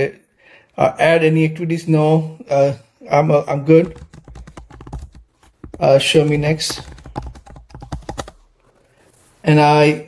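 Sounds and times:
typing on computer keyboard: 3.8s - 8.5s.

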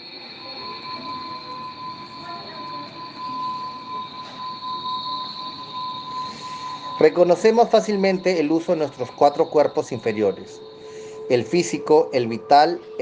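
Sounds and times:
lower steady tone: 0.0s - 13.0s
steady high-pitched tones: 0.0s - 13.0s.

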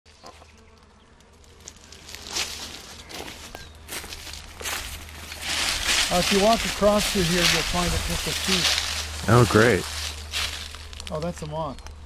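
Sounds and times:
footsteps on dry dirt: 1.5s - 11.0s.

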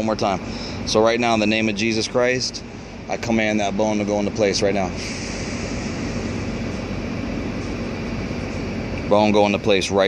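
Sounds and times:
low engine hum: 0.0s - 10.0s
vehicle traffic rumble: 0.0s - 10.0s.

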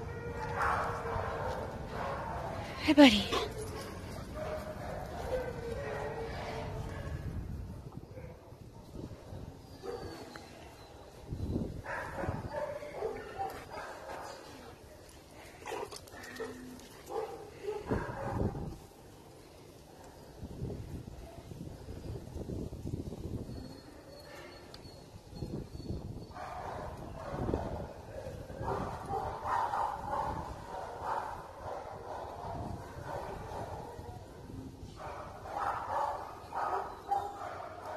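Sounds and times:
dogs play-fighting and vocalizing: 0.3s - 18.8s, 23.6s - 37.9s.

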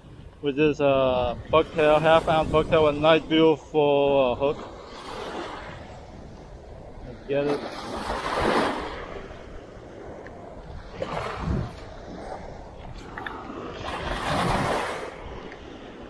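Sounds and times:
waves washing on sandy beach: 0.0s - 16.0s.

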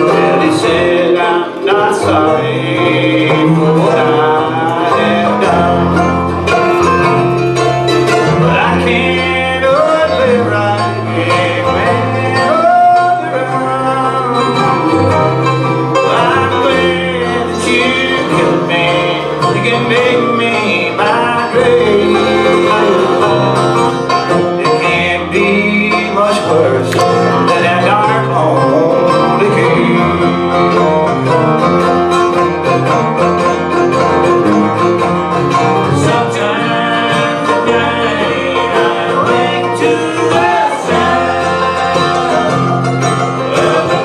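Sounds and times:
acoustic guitar: 0.0s - 44.0s
banjo: 0.0s - 44.0s
mandolin: 0.0s - 44.0s
walking bass guitar: 0.0s - 44.0s.

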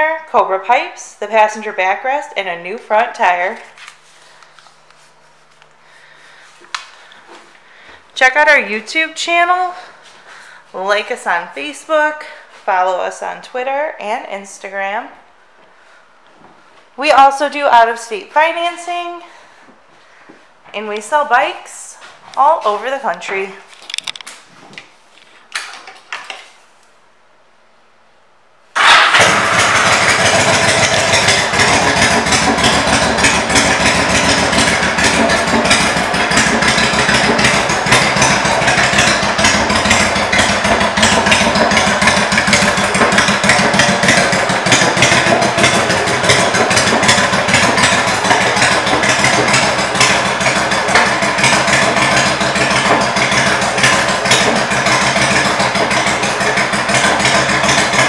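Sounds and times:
motorcycle engine starting and idling: 5.9s - 12.6s, 28.7s - 58.0s.

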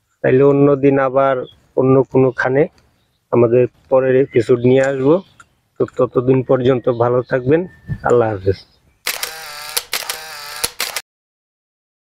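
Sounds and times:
sharp clicks: 9.0s - 11.0s.

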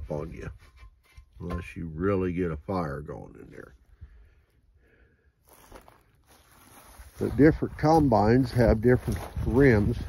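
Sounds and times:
faint footsteps in dry grass: 5.3s - 10.0s.

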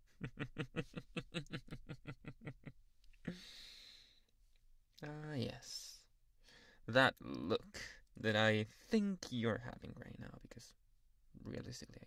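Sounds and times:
man sighing: 3.2s - 4.1s.

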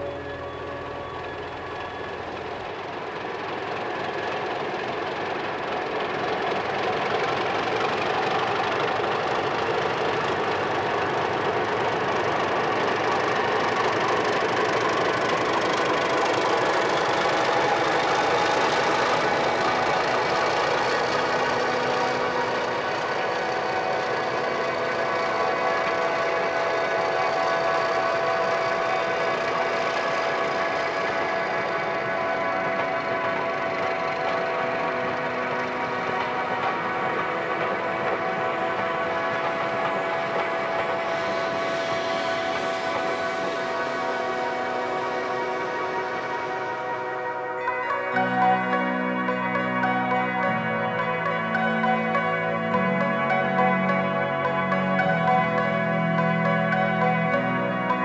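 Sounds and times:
faint high rising tone: 0.0s - 2.7s
dense wash of noise with held tones: 0.0s - 58.0s.

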